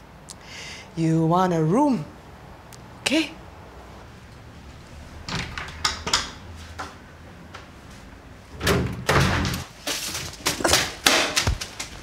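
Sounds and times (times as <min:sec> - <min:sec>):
door clattering: 0:05.2 - 0:06.5, 0:08.5 - 0:12.0.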